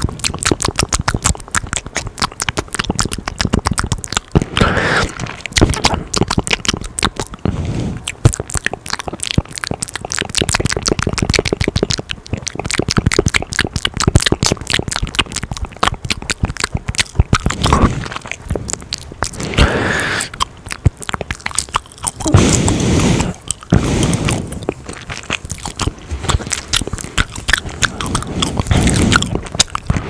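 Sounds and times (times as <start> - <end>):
wet mouth clicks chewing gum: 0.0 - 30.0.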